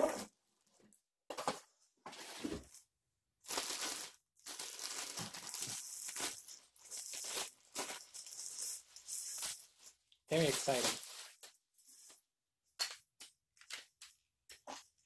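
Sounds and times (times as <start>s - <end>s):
plastic wrapping crinkling: 3.4s - 11.6s.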